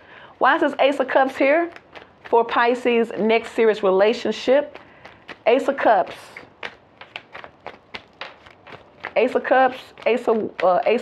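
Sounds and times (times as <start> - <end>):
cards clicking and tapping: 1.4 - 11.0.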